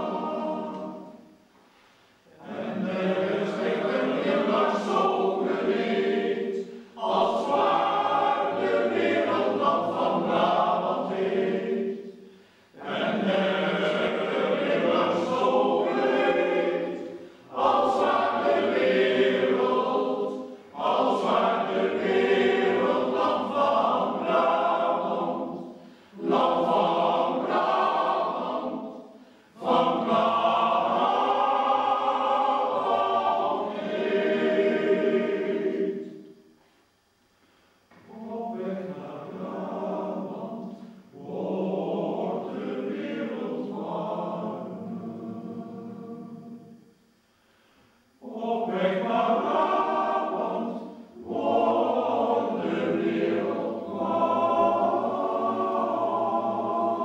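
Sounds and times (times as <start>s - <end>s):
men's choir singing: 0.0s - 1.4s, 2.3s - 12.2s, 12.8s - 36.3s, 38.0s - 46.8s, 48.2s - 57.0s.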